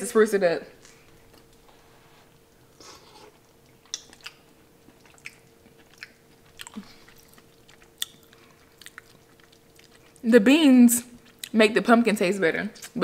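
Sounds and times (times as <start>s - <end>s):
faint steady hum: 0.0s - 13.0s
person chewing: 0.8s - 10.2s, 11.1s - 11.6s
soft mouth clicks: 3.9s - 4.4s.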